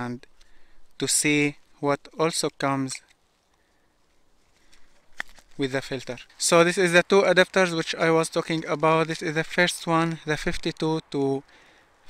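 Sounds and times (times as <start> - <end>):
faint rustling: 0.0 - 9.7
light plastic clicks: 4.6 - 5.6.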